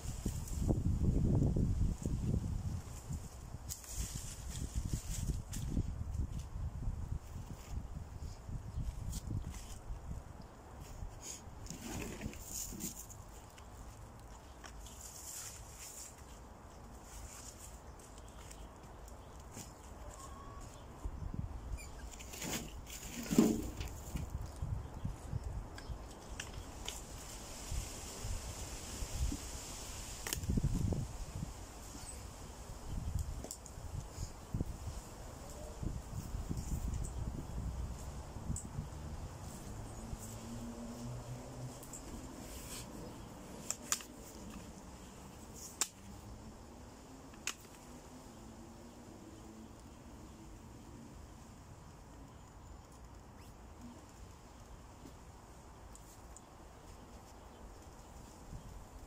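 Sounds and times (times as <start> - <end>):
wind rumble on microphone: 0.0 - 13.0, 20.8 - 22.1, 22.7 - 44.5
bark scraping and knocking: 22.2 - 24.0.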